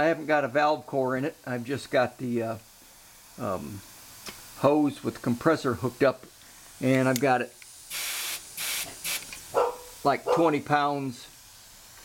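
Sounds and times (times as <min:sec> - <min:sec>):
compressed air hissing: 0:01.7 - 0:12.0.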